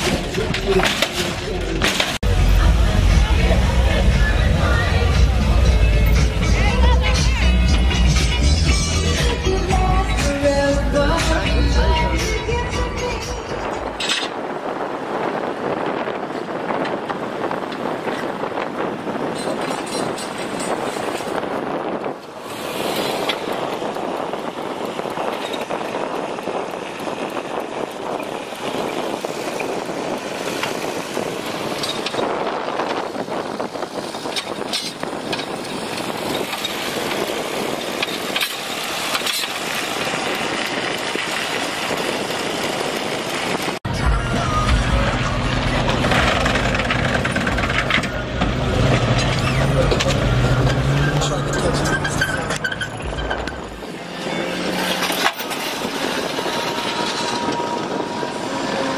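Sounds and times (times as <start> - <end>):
wind buffeting microphone: 9.7 - 58.9
mechanical buzz and clatter: 19.3 - 58.9
car engine running: 38.3 - 58.0.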